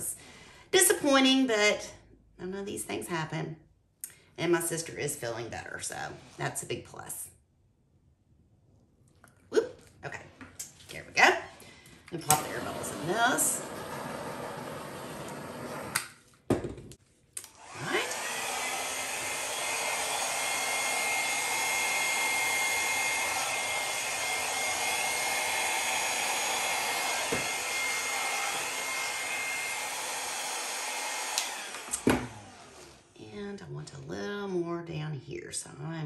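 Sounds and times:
hair dryer blowing: 11.2s - 16.2s, 17.4s - 33.2s
hair dryer switch click: 31.3s - 32.4s.

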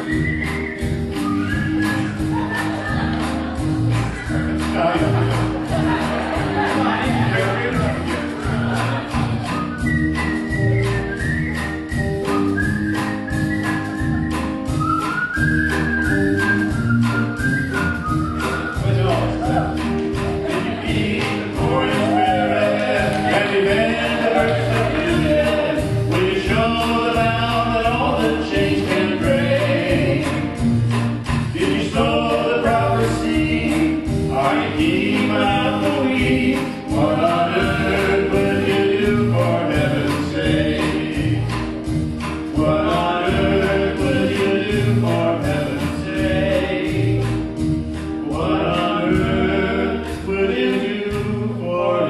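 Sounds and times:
man whistling a melody: 0.0s - 2.9s, 9.4s - 19.9s
live band playing: 0.0s - 52.0s
man singing lead: 20.4s - 30.6s, 31.5s - 41.6s, 42.5s - 47.5s, 48.2s - 52.0s.

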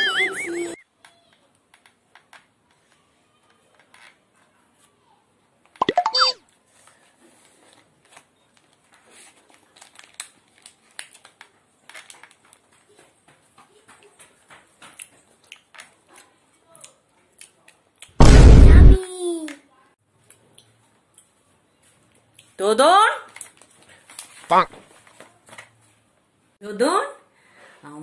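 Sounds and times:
wrapper crinkling: 8.1s - 12.7s.

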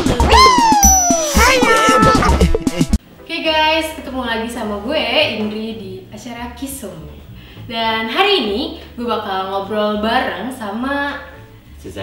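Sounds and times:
electronic intro jingle: 0.0s - 3.0s.

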